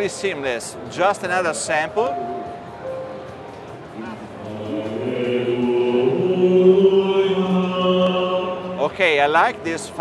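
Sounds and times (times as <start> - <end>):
sampled choir-like sung tones: 4.0 - 9.3.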